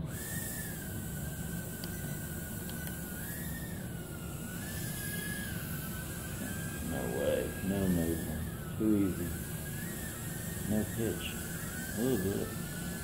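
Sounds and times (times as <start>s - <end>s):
small drone motors whining: 0.0s - 13.0s.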